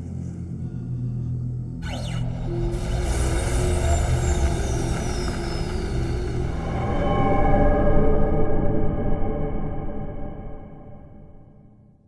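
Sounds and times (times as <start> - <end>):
low drone: 0.0 - 11.9.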